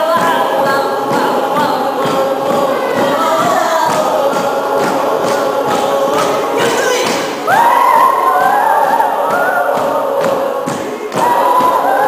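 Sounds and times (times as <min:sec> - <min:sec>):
crowd singing: 0:00.0 - 0:12.0
thudding beat: 0:00.0 - 0:12.0.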